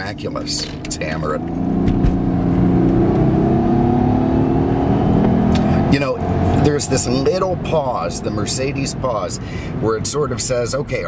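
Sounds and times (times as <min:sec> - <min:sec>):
car engine accelerating: 0:00.0 - 0:10.5.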